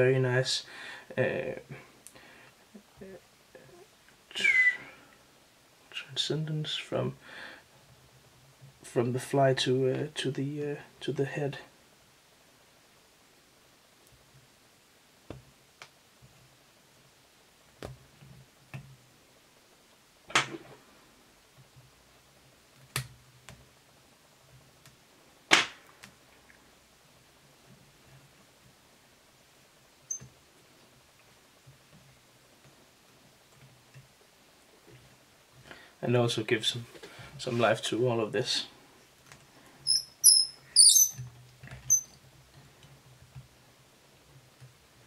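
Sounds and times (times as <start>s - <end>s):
bobbin squeaking: 39.9s - 41.2s, 41.9s - 42.2s.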